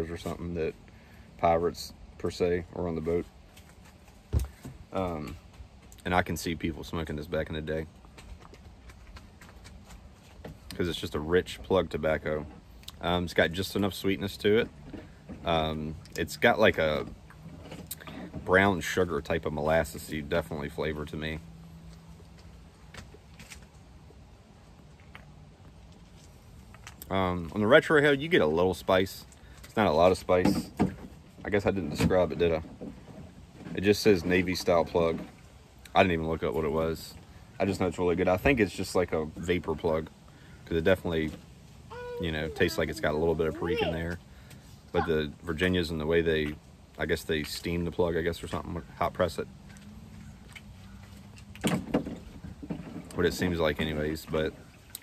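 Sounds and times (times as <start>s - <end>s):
low outdoor background: 0.0s - 55.0s.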